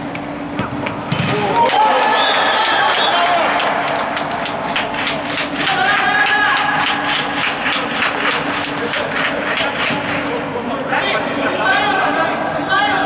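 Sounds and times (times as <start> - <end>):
people shouting: 1.3 - 4.1, 5.6 - 7.1
hand clapping: 1.5 - 10.1.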